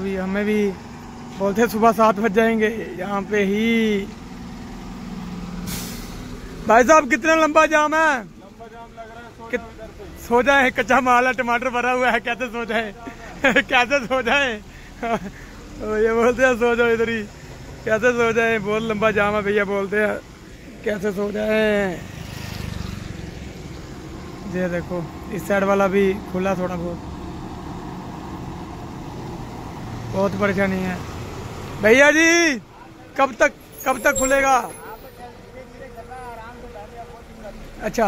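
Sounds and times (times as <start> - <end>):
diesel truck engines rumbling: 0.0 - 38.0
air brake hiss: 5.6 - 6.3.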